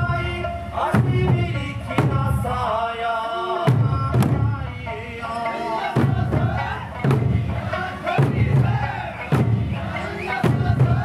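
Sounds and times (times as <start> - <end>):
big drum beats: 0.0 - 2.8, 3.6 - 11.0
group singing: 0.0 - 11.0
group shouting: 5.7 - 7.0, 7.6 - 11.0.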